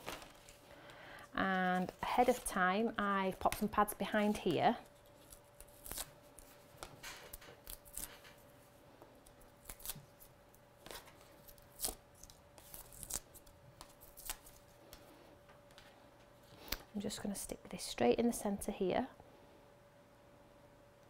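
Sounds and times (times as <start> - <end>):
paper and plastic rustles: 0.0 - 0.7, 1.5 - 5.8
faint steady hum: 0.0 - 21.0.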